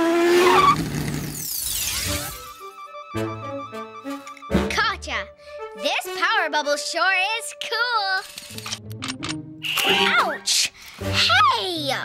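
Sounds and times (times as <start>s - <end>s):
background music: 1.8s - 12.0s.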